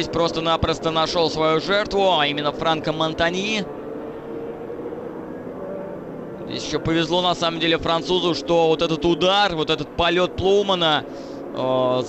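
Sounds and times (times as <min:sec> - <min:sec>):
race car engines humming: 0:00.0 - 0:12.0.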